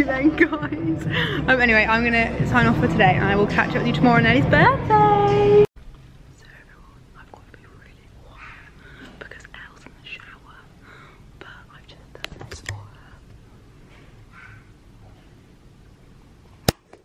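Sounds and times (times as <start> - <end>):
woman whispering: 6.4 - 10.8, 11.4 - 13.2.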